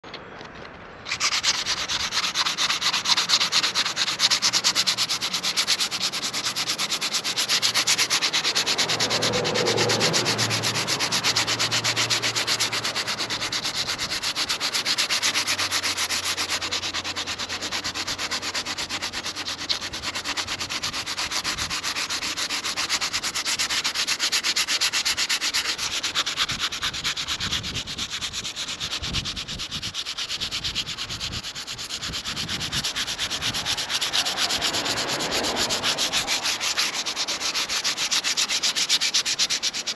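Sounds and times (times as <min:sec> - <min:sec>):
hand sanding disc rubbing: 0:01.0 - 0:39.9.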